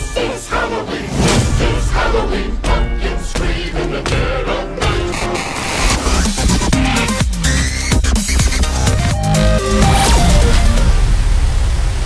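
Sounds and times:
electronic music: 0:04.2 - 0:11.2.

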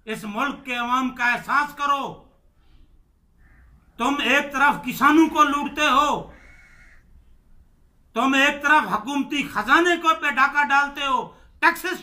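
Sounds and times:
man speaking: 0:00.0 - 0:02.3, 0:04.0 - 0:06.4, 0:08.1 - 0:12.0
faint bird call: 0:03.4 - 0:04.0, 0:06.3 - 0:07.4.

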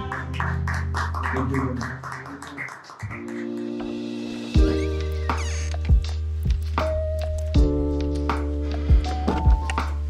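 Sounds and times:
held chord background music: 0:00.0 - 0:02.2, 0:03.2 - 0:10.0.

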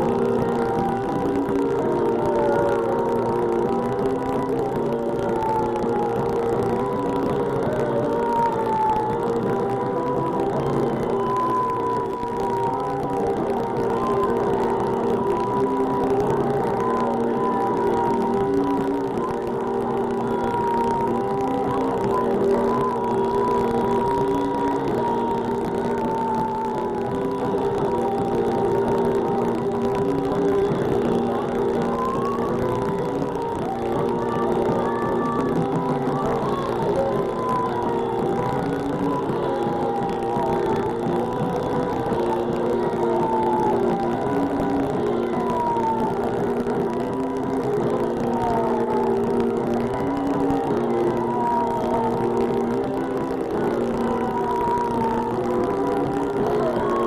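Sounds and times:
wavering high tone: 0:00.0 - 0:57.0.

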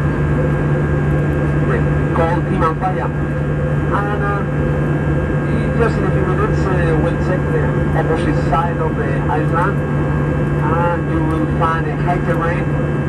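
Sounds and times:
jet engine and airflow drone: 0:00.0 - 0:13.0.

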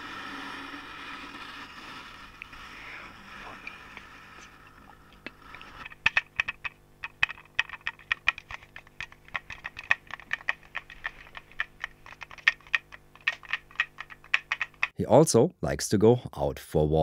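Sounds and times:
faint steady hum: 0:00.0 - 0:17.0
plastic object clicking and tapping: 0:05.8 - 0:15.0.

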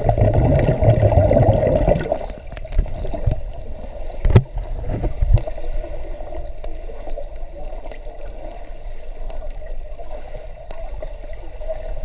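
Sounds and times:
water churning and bubbling underwater: 0:00.0 - 0:12.0.

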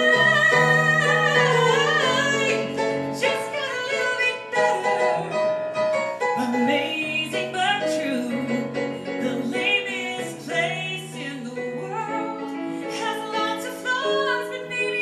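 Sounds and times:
woman singing: 0:00.0 - 0:05.4, 0:06.3 - 0:15.0
piano accompaniment: 0:00.0 - 0:15.0.

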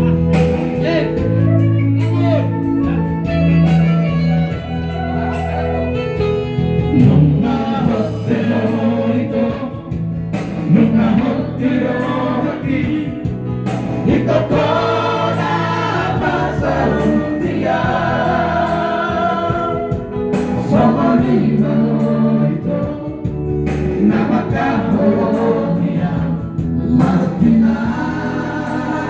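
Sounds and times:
instrumental backing: 0:00.0 - 0:29.0
men singing through loudspeaker: 0:06.9 - 0:29.0.

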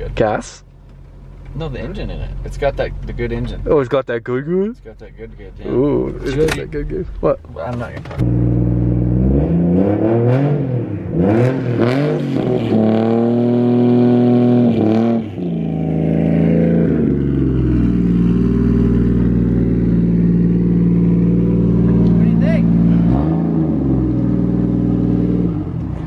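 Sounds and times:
car engine revving: 0:04.8 - 0:26.0.

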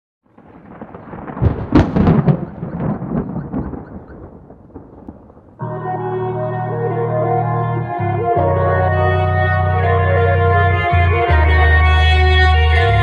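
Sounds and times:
crackling rumbling noise effect: 0:00.2 - 0:05.8
sustained synthesizer chord: 0:05.6 - 0:13.0.

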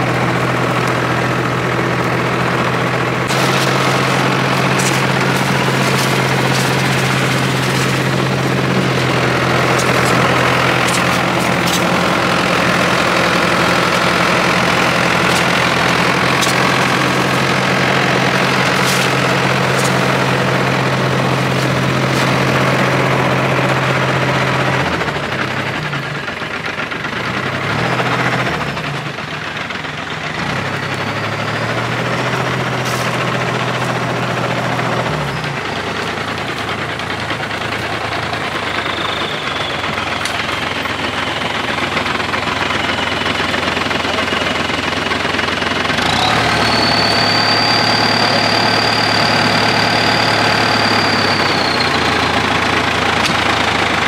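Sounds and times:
tractor diesel engine running: 0:00.0 - 0:54.0.

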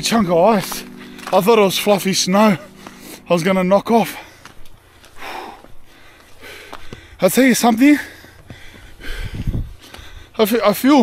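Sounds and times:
man breathing hard: 0:04.2 - 0:07.2, 0:08.0 - 0:10.4.

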